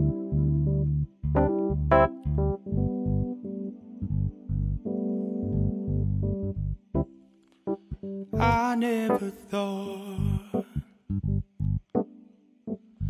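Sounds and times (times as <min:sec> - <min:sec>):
electric keyboard chords: 0:00.0 - 0:09.5, 0:10.2 - 0:13.0
man singing: 0:08.4 - 0:10.9.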